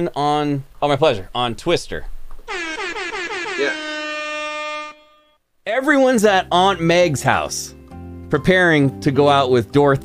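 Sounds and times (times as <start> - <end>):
buzzy warbling horn tone: 2.5 - 5.4.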